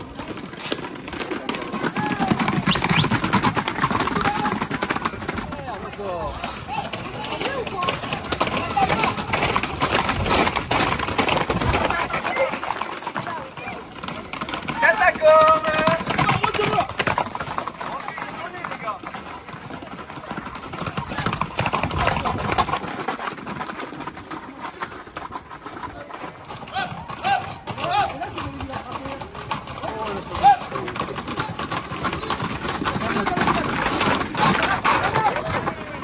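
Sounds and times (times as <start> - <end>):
hooves clattering on paved road: 0.0 - 36.0
people's voices: 0.0 - 36.0.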